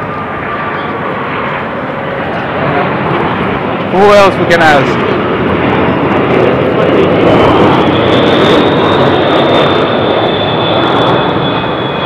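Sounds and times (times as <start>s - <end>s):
jet airliner flying overhead: 0.0s - 12.0s.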